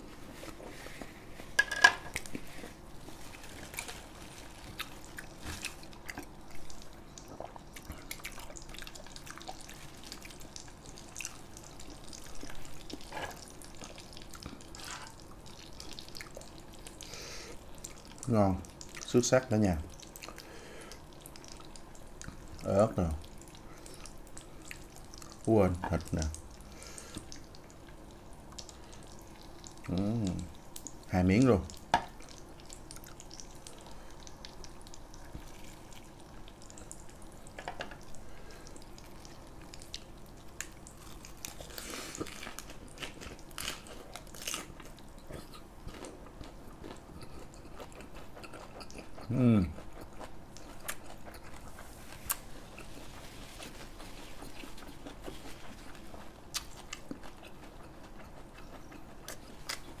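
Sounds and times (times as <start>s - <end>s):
chewing with crisp crunches: 2.1s - 60.0s.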